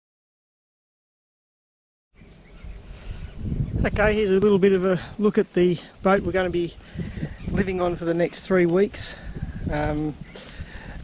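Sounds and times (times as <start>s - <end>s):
wind rumble on microphone: 2.2s - 11.0s.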